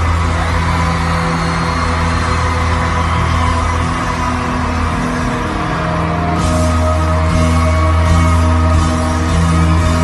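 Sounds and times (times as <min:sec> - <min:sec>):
live band music: 0:02.1 - 0:10.0.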